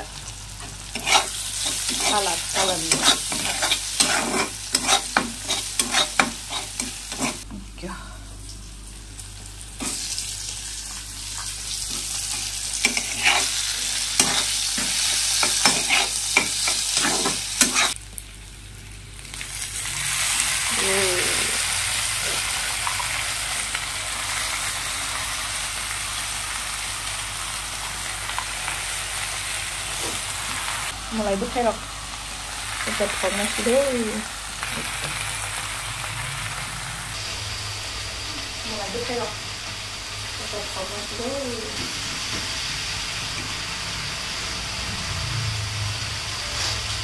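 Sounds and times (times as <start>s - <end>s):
food frying in hot oil: 0.0s - 7.5s, 8.4s - 47.0s
metal spatula scraping pan: 0.9s - 7.4s, 12.8s - 18.0s
greens sizzling loudly: 19.9s - 22.4s.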